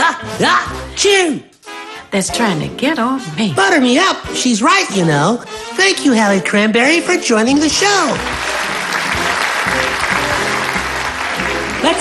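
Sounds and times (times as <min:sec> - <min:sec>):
background music: 0:00.0 - 0:12.0
audience applause: 0:08.0 - 0:12.0.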